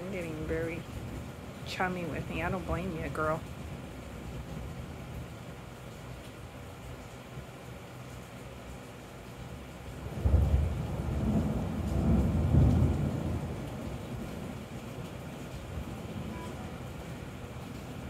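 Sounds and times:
thunder rumbling: 10.0 - 18.0.

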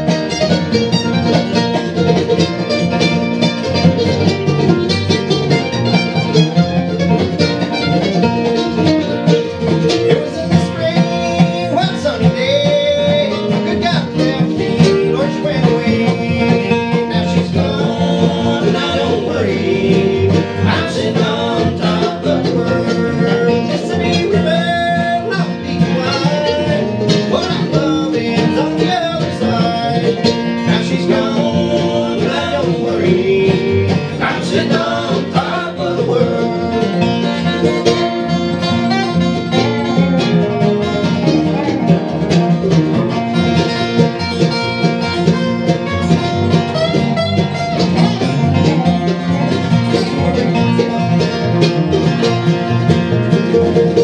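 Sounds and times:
bluegrass band playing: 0.0 - 54.0
people singing: 9.7 - 37.9.

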